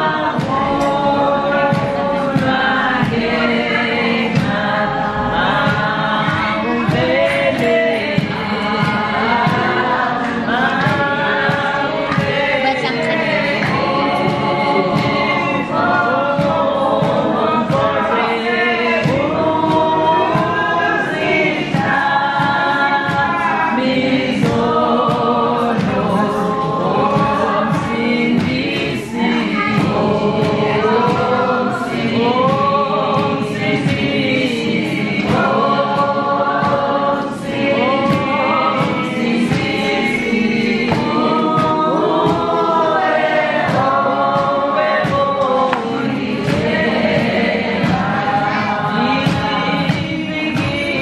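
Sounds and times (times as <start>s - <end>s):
choir singing gospel music: 0.0s - 51.0s.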